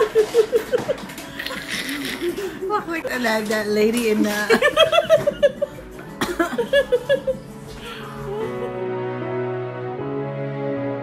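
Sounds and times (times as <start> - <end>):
women laughing: 0.0 - 3.1, 4.3 - 7.5
women talking: 2.2 - 5.4.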